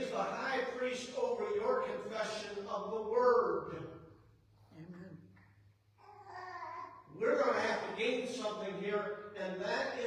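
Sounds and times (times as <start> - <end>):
man preaching: 0.0 - 4.0, 7.1 - 10.0.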